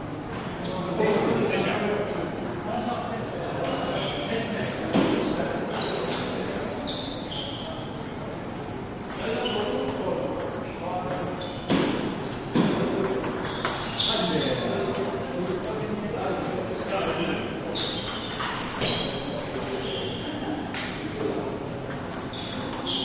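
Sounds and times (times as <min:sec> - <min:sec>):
murmur of voices: 0:00.0 - 0:23.0
table tennis balls clicking: 0:09.0 - 0:14.0.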